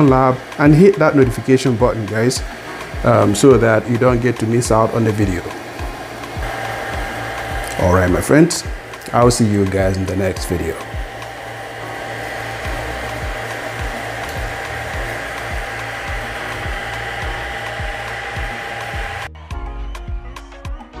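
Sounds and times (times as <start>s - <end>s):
machine whooshing and whine: 0.0s - 19.3s
background music with a beat: 0.0s - 21.0s.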